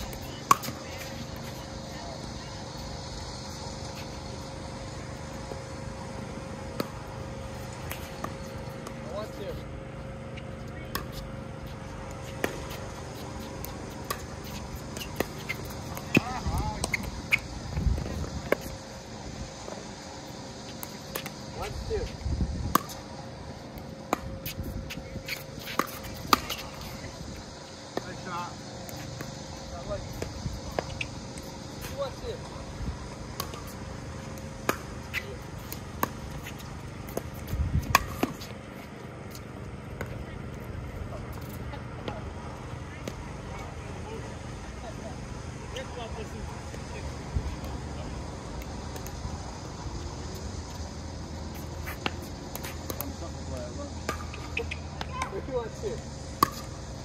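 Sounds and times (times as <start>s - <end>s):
players calling out: 52.7s - 56.2s.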